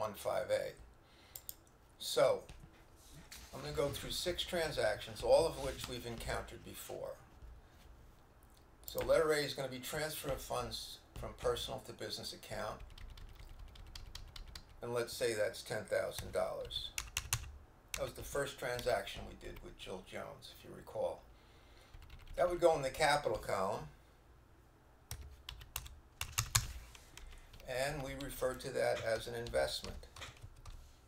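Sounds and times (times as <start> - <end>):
computer keyboard typing: 12.8 - 14.8, 16.2 - 18.2, 21.9 - 22.4, 25.1 - 30.8
keyboard keystrokes: 16.9 - 17.5, 25.1 - 28.4.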